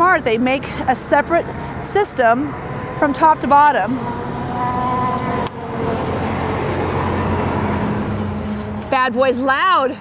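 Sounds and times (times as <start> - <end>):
generator droning: 0.2 - 9.0.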